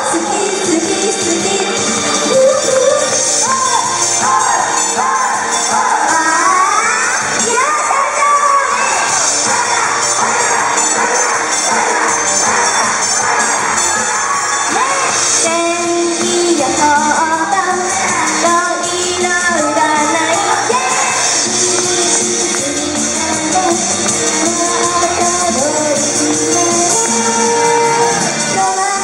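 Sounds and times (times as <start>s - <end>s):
crowd cheering and calling out: 0.0s - 29.0s
pop song over pa system: 0.0s - 29.0s
women singing into microphones: 0.0s - 29.0s.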